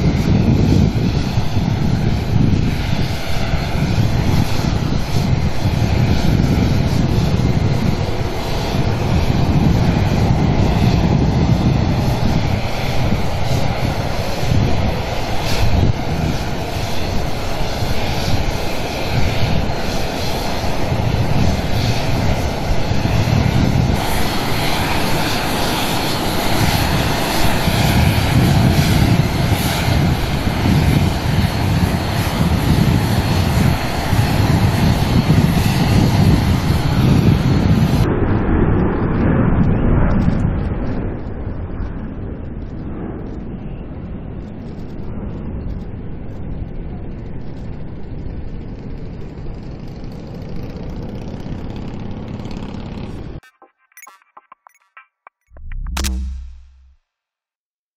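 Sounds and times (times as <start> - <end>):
jet engines whining: 0.0 - 38.1
wind buffeting microphone: 0.0 - 53.4.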